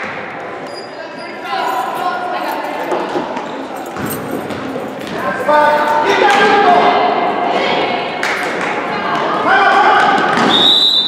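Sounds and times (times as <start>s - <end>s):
overlapping voices echoing: 2.0s - 10.4s.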